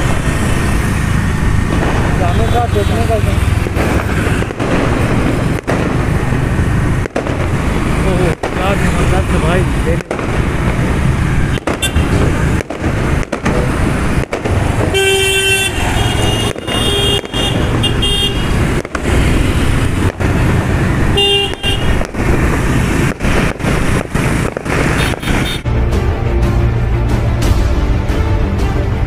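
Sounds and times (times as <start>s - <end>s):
road traffic rumble: 0.0s - 29.0s
car horns honking: 2.2s - 4.8s, 11.5s - 12.2s, 14.9s - 20.0s, 21.1s - 22.1s, 24.9s - 25.7s.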